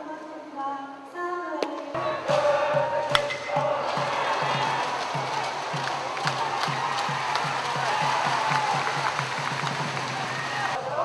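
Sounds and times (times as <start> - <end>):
crowd cheering: 1.8 - 11.0
drum beating steadily: 2.0 - 10.8.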